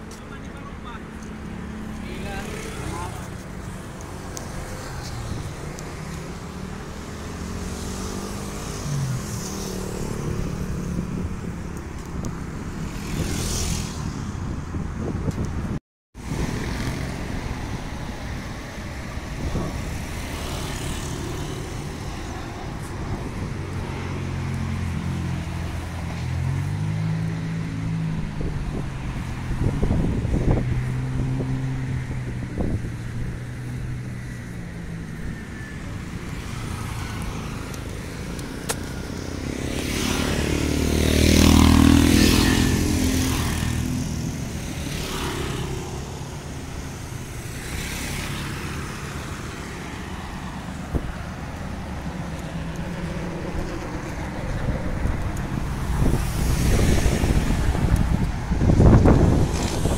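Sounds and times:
highway traffic: 0.0 - 59.9
vehicle passing close: 36.0 - 59.9.

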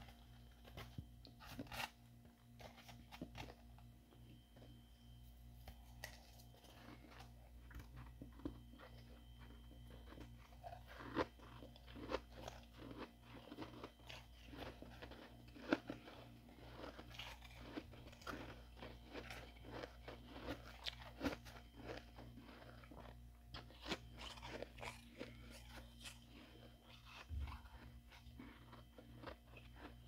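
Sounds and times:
spoon scraping freezer frost: 0.0 - 3.8.

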